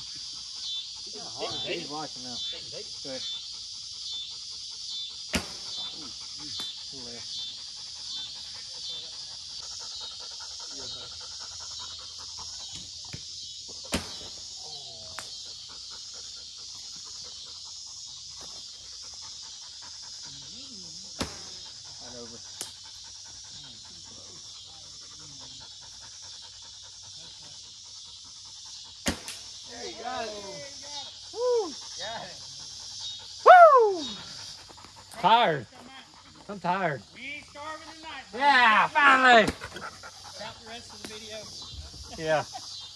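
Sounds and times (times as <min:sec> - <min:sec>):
dog panting: 0:00.0 - 0:13.9, 0:15.0 - 0:29.0, 0:29.8 - 0:33.4, 0:34.0 - 0:38.4, 0:39.5 - 0:42.9
steady high-pitched hiss: 0:00.0 - 0:42.9.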